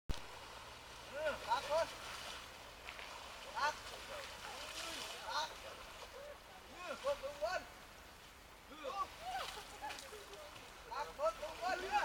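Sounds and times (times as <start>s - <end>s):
steady outdoor hiss: 0.1s - 12.0s.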